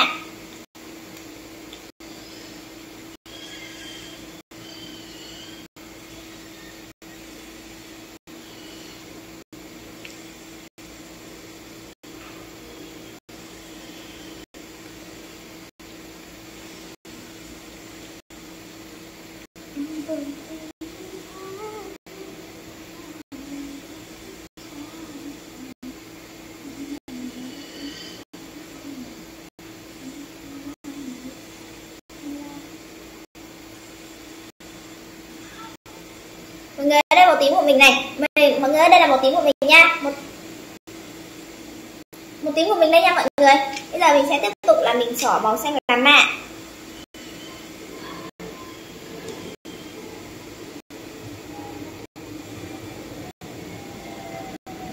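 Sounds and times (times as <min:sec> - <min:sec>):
woman's quiet voice: 0:19.7 - 0:22.4, 0:24.6 - 0:26.0, 0:26.6 - 0:29.2, 0:30.0 - 0:31.4, 0:32.2 - 0:32.7.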